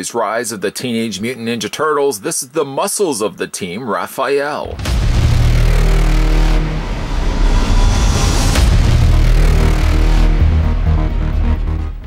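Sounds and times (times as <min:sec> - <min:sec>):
deep rumbling bass: 0:04.7 - 0:12.0
loud electronic music: 0:04.7 - 0:12.0.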